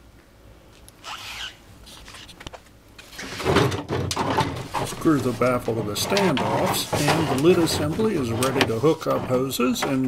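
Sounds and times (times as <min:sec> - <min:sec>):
plywood scraping on plastic bin: 0:03.1 - 0:10.0.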